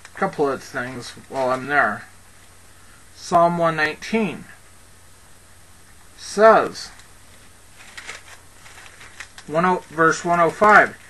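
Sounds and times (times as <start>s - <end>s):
steady low hum: 0.0s - 11.0s
faint clicks or rustles: 6.9s - 11.0s.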